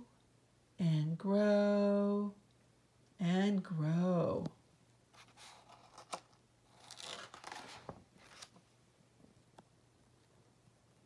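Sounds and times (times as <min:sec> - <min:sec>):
book page turning: 0:05.2 - 0:08.6.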